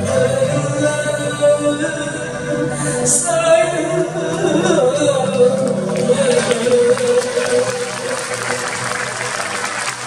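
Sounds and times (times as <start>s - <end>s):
crowd voices: 0.0s - 10.0s
audience applause: 5.9s - 10.0s.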